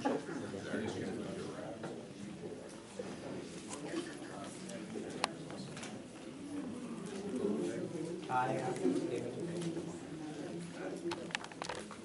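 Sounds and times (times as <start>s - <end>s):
murmured conversation: 0.0s - 12.0s.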